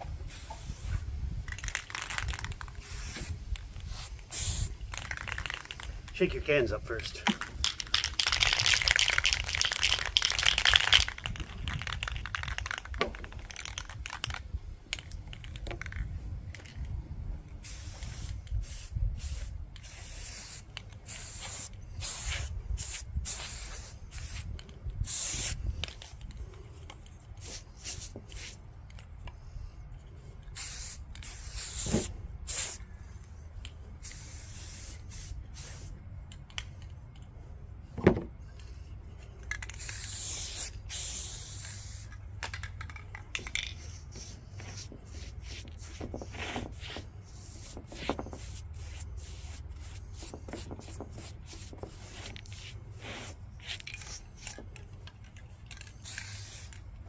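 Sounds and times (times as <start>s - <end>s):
spray paint cans hissing: 0.2s - 16.9s, 17.5s - 29.4s, 30.1s - 37.3s, 38.5s - 57.0s.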